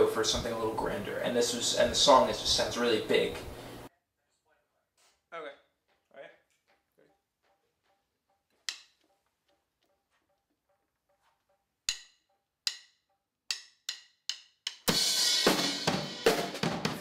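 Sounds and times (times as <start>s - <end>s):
drum hits: 14.7s - 17.0s.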